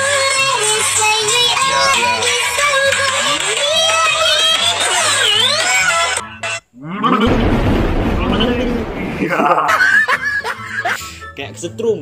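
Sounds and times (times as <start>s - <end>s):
man laughing loudly: 9.2s - 11.0s.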